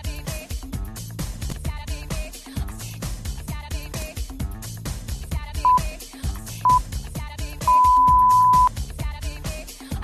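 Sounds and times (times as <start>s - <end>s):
dance music: 5.6s - 5.8s, 7.7s - 8.7s
interval timer beeping: 7.7s - 8.7s.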